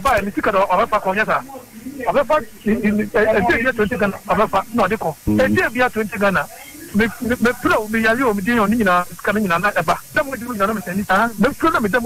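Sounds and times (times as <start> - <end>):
woman talking: 2.8 - 3.6.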